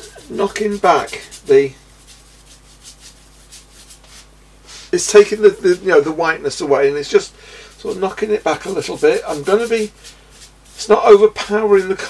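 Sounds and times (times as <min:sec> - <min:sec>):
paintbrush strokes on paper: 0:00.0 - 0:06.2, 0:07.0 - 0:12.0.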